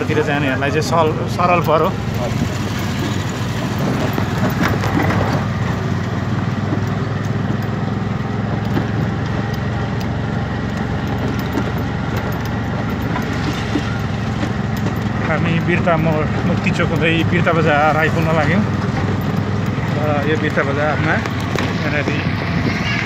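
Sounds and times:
auto-rickshaw engine: 0:00.0 - 0:23.0
road noise: 0:00.0 - 0:23.0.

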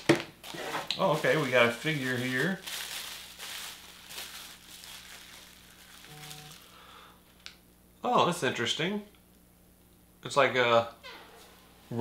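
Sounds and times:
bubble wrap crinkling: 0:00.0 - 0:06.8.

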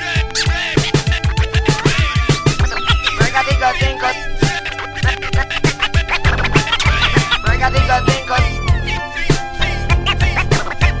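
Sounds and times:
hip hop beat: 0:00.0 - 0:11.0
turntable scratching: 0:00.0 - 0:11.0.

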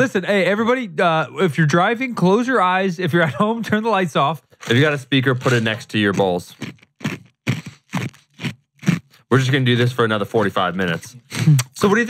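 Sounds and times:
mouth clicks and smacks: 0:04.4 - 0:11.9.

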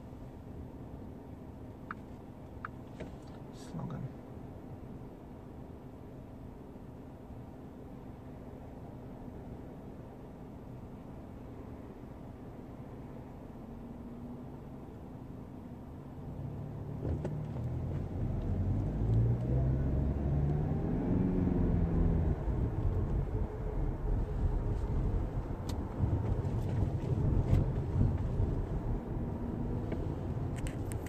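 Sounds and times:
road noise: 0:00.0 - 0:31.0
car engine accelerating: 0:16.2 - 0:31.0.

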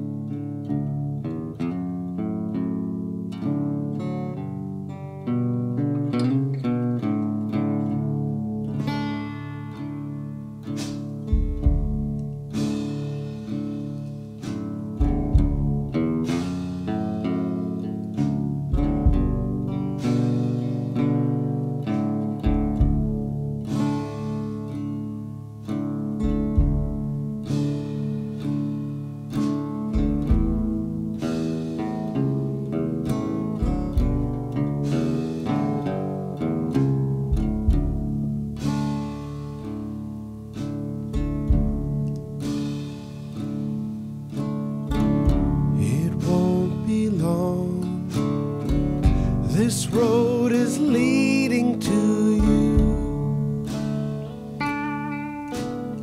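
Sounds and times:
acoustic guitar picking and strumming: 0:00.0 - 0:56.0
deep low notes: 0:45.3 - 0:56.0.

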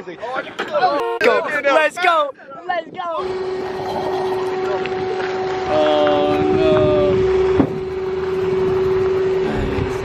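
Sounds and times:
steady mechanical hum: 0:00.3 - 0:10.0.

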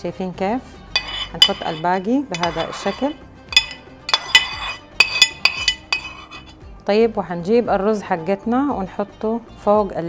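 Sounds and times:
metal spoon clinking against dishes: 0:01.0 - 0:06.6.

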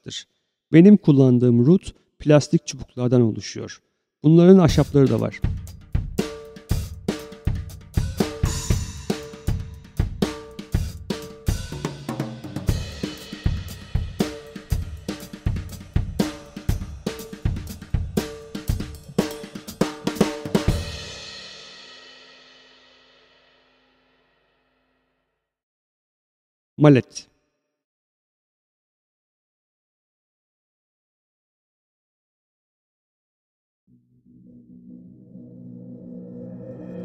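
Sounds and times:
drum kit played with rods: 0:04.7 - 0:23.0.

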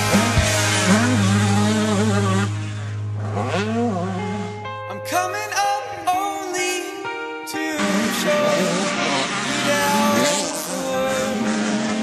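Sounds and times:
rock music: 0:00.0 - 0:12.0.

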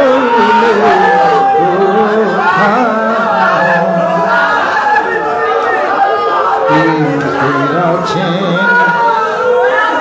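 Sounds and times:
men singing and chanting: 0:00.0 - 0:10.0.

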